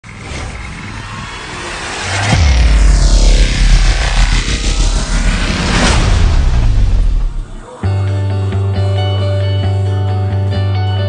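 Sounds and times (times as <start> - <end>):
low rumble: 0.0 - 7.7
noisy whoosh: 0.0 - 7.7.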